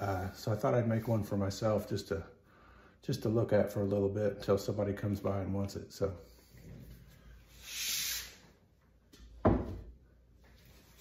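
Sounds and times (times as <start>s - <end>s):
pottery knocking on wooden bench: 9.4s - 9.9s.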